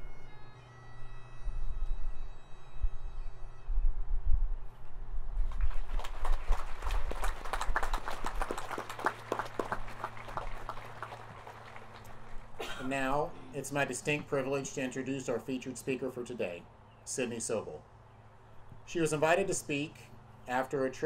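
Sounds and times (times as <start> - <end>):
bagpipe notes: 0.0 - 4.0
wind rumbling on microphone: 1.4 - 8.8
crowd clapping: 5.5 - 12.6.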